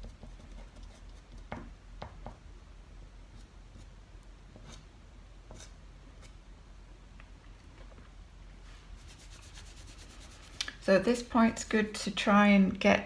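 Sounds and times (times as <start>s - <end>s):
low steady hum: 0.0s - 13.0s
fingers rubbing pastel on paper: 9.0s - 10.6s.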